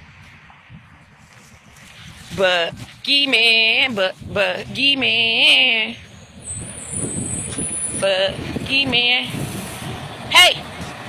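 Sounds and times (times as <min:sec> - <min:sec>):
passing vehicle rumble: 0:00.0 - 0:11.0.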